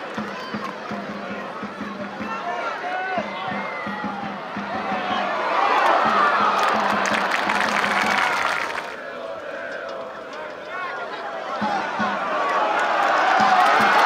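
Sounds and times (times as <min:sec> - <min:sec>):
crowd cheering loudly: 0:00.0 - 0:14.0
stadium crowd shouting and chanting: 0:00.0 - 0:14.0
crowd clapping: 0:05.7 - 0:09.0, 0:12.4 - 0:14.0.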